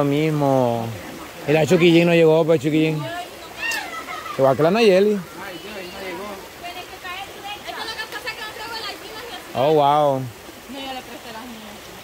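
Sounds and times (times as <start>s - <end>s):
stream rushing: 0.0s - 12.0s
voices talking and calling out: 0.0s - 12.0s.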